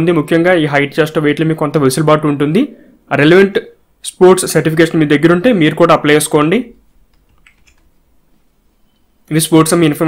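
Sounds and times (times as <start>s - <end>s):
computer clicks: 7.1s - 7.9s.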